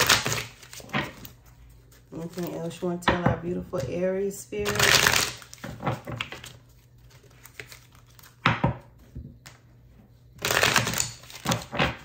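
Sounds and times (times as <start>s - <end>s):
cards being shuffled: 0.0s - 3.0s, 4.6s - 8.4s, 10.4s - 12.0s.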